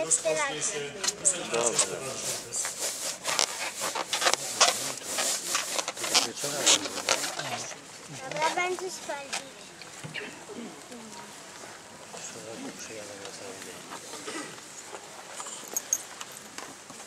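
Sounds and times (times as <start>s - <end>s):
low voices: 0.0s - 16.6s.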